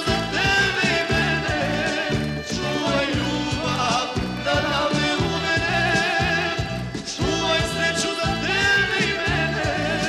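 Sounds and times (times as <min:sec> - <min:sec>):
accordion band with bass: 0:00.0 - 0:10.0
man singing folk song: 0:00.0 - 0:10.0.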